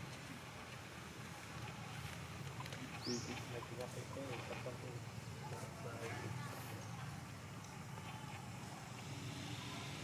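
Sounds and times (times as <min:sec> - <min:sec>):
distant people talking: 0:00.1 - 0:10.0.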